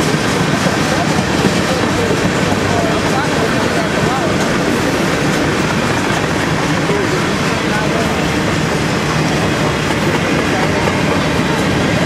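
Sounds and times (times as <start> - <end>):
freight train rumbling and rattling: 0.0 - 12.0.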